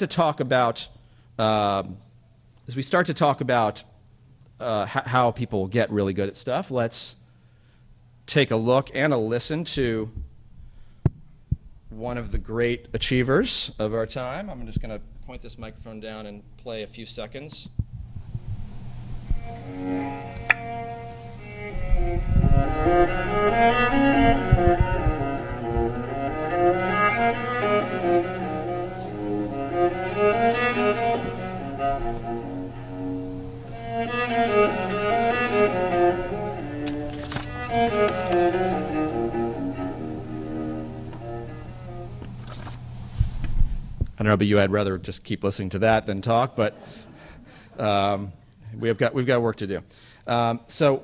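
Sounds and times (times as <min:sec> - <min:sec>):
low thumps: 0:17.6 - 0:42.4
low hum: 0:17.7 - 0:44.2
bowed cello music: 0:19.2 - 0:42.8.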